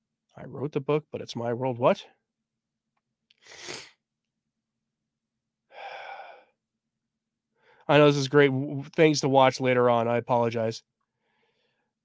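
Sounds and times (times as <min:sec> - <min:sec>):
man's sharp breath: 0:03.4 - 0:04.0, 0:05.7 - 0:06.6
man sighing: 0:05.7 - 0:06.5.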